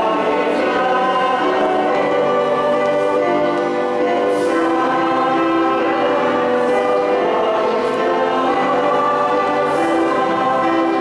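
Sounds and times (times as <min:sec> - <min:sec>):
church choir singing: 0:00.0 - 0:11.0.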